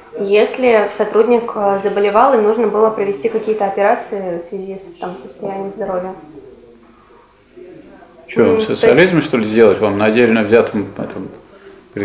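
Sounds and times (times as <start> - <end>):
murmured voice hum: 4.9 - 9.3
voice trailing off: 5.9 - 9.1.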